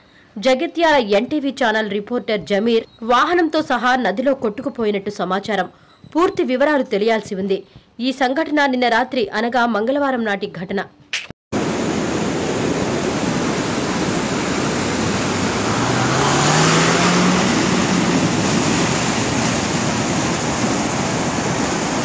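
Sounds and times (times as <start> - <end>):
floodwater rushing: 11.6 - 22.0
car engine revving: 13.6 - 21.3.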